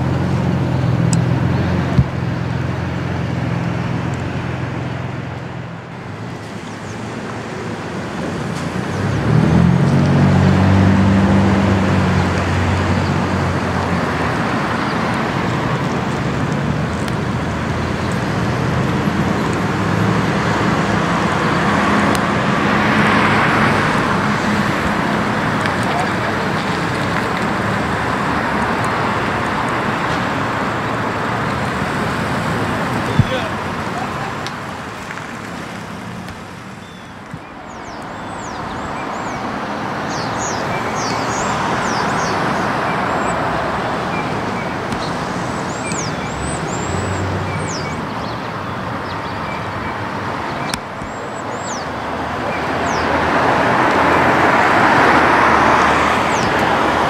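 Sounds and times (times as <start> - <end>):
car passing: 0.0 - 57.0
vehicles going by: 0.0 - 57.0.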